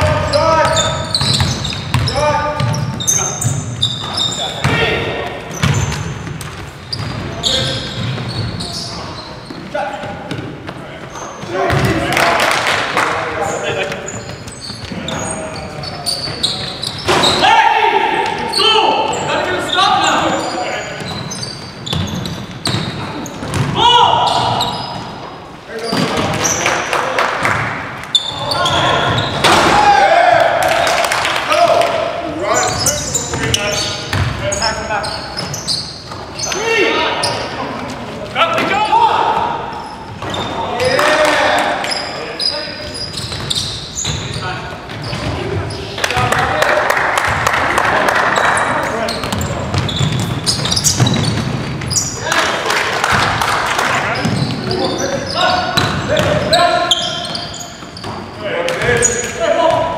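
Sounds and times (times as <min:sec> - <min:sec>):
players' voices calling out: 0:27.6 - 0:59.9.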